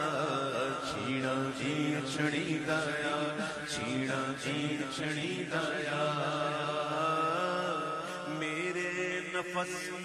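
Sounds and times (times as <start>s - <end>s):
man singing through microphone: 0.0s - 10.0s.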